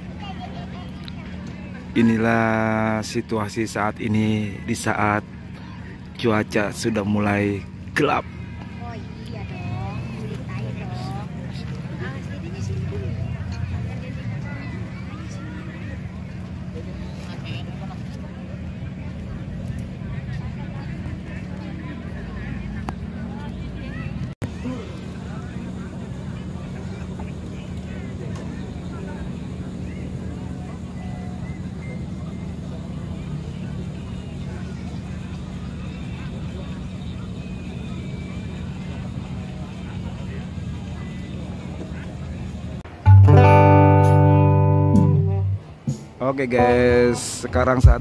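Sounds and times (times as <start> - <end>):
faint distant chatter: 0.0 - 48.0
sustained instrument note: 43.1 - 45.8.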